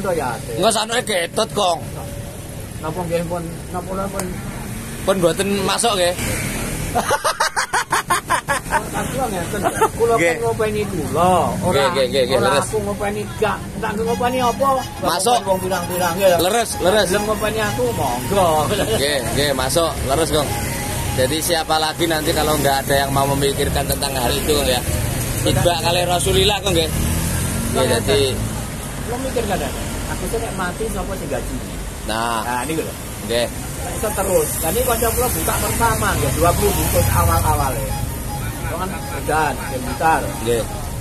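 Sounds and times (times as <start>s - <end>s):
men talking: 0.0s - 41.0s
road traffic passing: 0.0s - 41.0s
vehicle engine rumbling: 0.0s - 41.0s.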